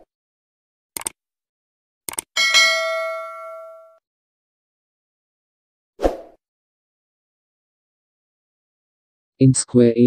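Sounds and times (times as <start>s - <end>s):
clicks: 2.1s - 2.3s
bright bell ding: 2.4s - 4.0s.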